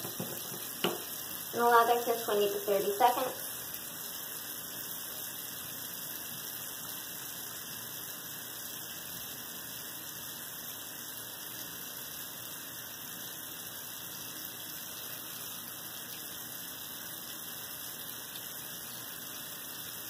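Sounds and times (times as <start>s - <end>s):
steady high hiss: 0.0s - 20.0s.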